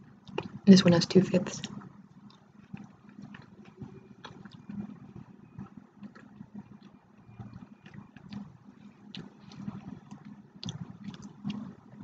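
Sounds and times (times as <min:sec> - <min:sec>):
slurping and chewing: 0:02.2 - 0:11.9.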